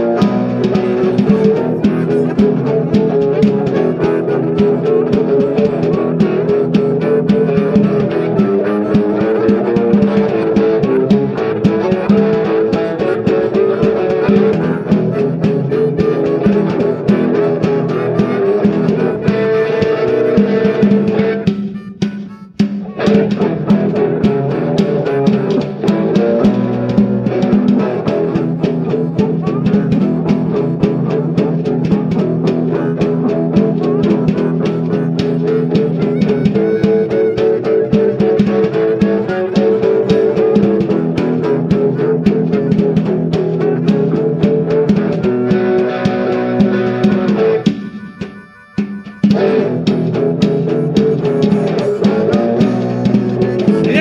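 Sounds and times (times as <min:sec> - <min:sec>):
blues guitar: 0:00.0 - 0:54.0
snare drum played with brushes: 0:00.0 - 0:54.0.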